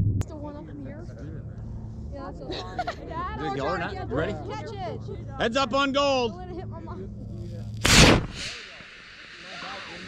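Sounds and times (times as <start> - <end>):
rocket motor hissing: 7.6 - 10.0
rocket motor whoosh: 7.7 - 10.0.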